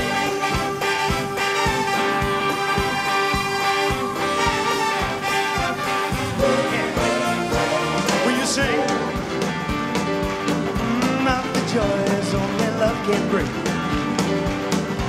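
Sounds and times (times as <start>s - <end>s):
held brass chords: 0.0s - 14.7s
live band playing upbeat music: 0.0s - 15.0s
steady drum beat: 0.0s - 15.0s.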